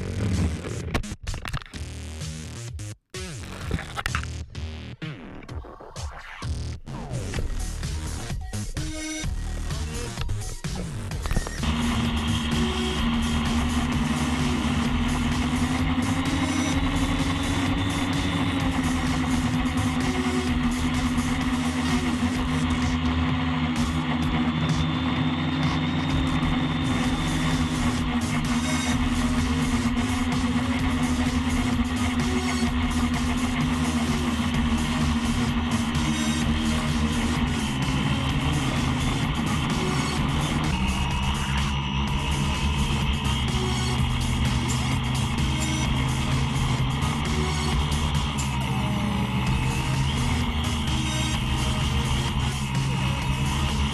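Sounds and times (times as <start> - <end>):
background music: 2.2 - 53.9
quadcopter motors humming: 7.3 - 53.9.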